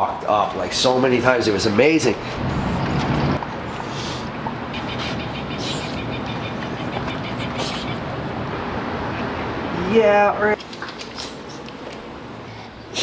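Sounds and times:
city traffic rumble: 0.0s - 13.0s
vehicle engine hum: 0.4s - 13.0s
fast repeating high chatter: 4.7s - 8.1s.

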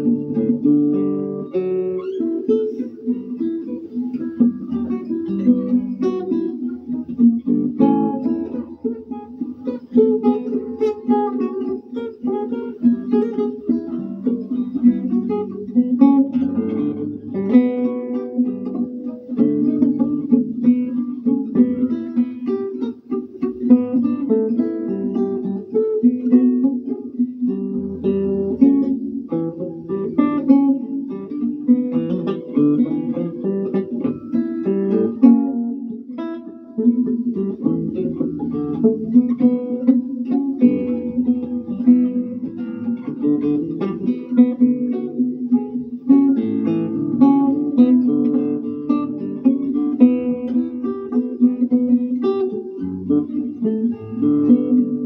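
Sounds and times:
fingerpicked classical guitar: 0.0s - 55.0s.

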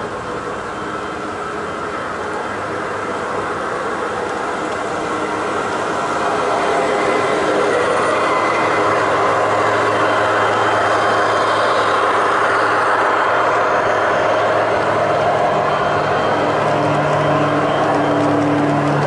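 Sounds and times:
model train wheels rolling on rail: 0.0s - 19.0s.

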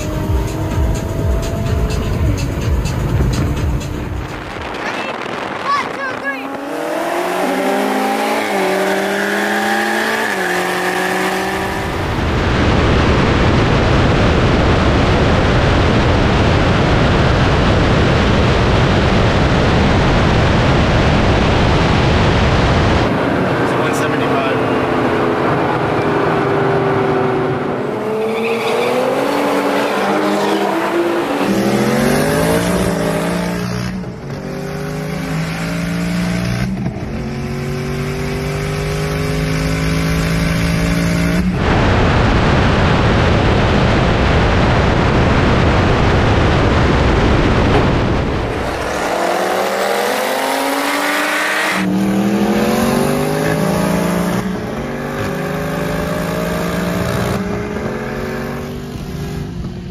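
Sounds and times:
heavy wind rush: 0.0s - 34.3s, 41.4s - 54.9s
car engine at full throttle: 0.0s - 59.9s.

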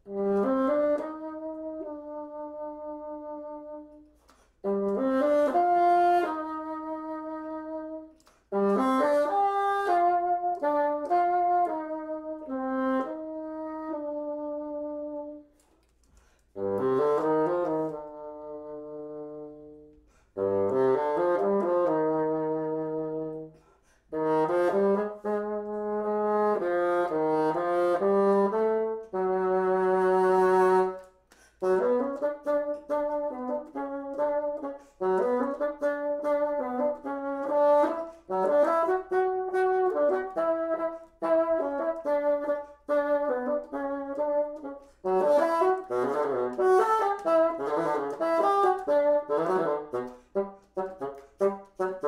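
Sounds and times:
solo bassoon playing: 0.0s - 52.0s.

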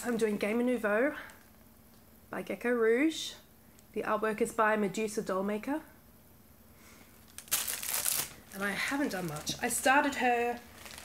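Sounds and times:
plastic packaging crinkling: 7.2s - 11.0s.

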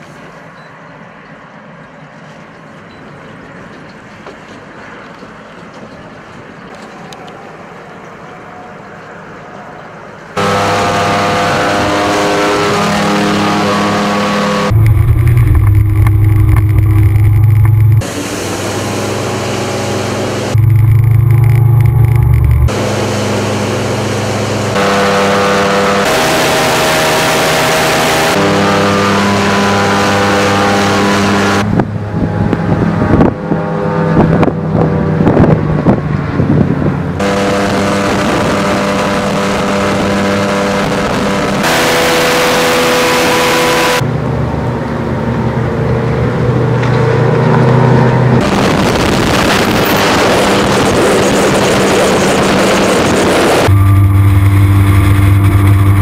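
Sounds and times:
outboard engine running hard: 14.7s - 25.3s, 45.7s - 56.0s.

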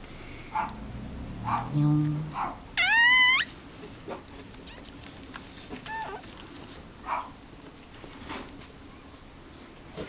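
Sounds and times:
puppy squeaking: 2.8s - 3.6s, 5.7s - 6.4s.

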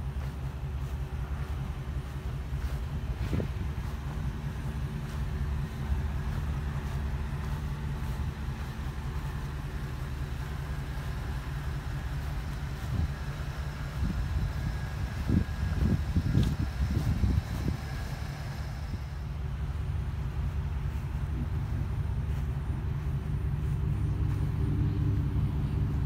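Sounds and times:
truck engine idling: 0.0s - 26.0s
wind buffeting microphone: 0.0s - 26.0s.

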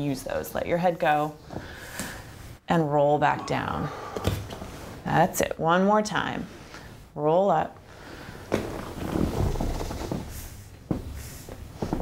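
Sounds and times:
rustling on exercise mat: 7.9s - 12.0s.

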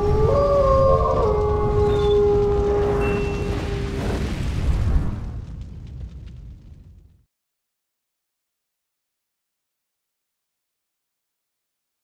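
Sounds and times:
wolf howling: 0.0s - 4.2s
low rumble: 0.0s - 7.2s.

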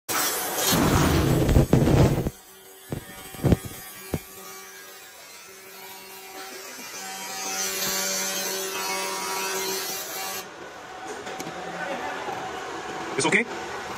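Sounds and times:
laser buzzing with crackling hiss: 0.2s - 4.3s
loud rough noise: 0.5s - 4.2s.

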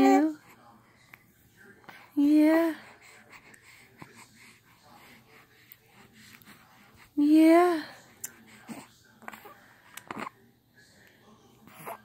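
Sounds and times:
baby breathing: 1.8s - 7.2s, 7.8s - 10.4s.

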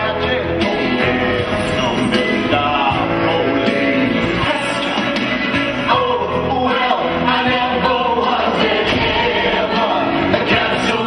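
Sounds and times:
choir singing over instrumental backing: 0.0s - 11.0s.

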